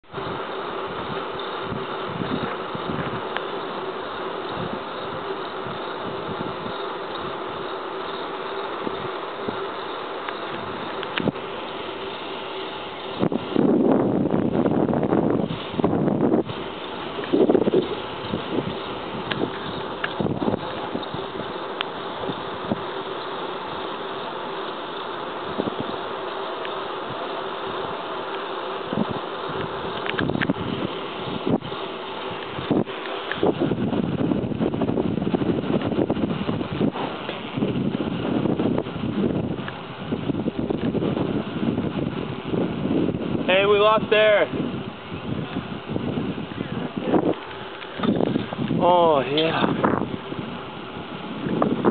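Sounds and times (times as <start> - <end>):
road rushing noise: 0.0 - 51.9
steady buzzing hum: 0.0 - 51.9
wind gusting on microphone: 0.0 - 51.9.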